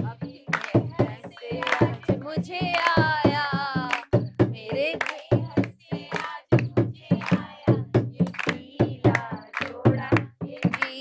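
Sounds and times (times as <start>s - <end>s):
drum beats: 0.0s - 11.0s
rhythmic hand clapping: 0.0s - 11.0s
women singing together: 0.0s - 11.0s.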